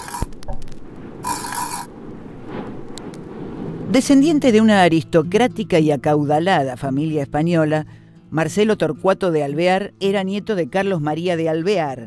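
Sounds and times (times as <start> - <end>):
hissing burst of noise: 0.0 - 3.7.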